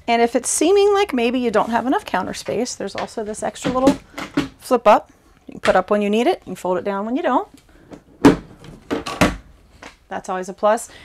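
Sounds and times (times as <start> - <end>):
countertop flap clacking: 2.3 - 4.6
countertop flap knocks: 8.2 - 9.4.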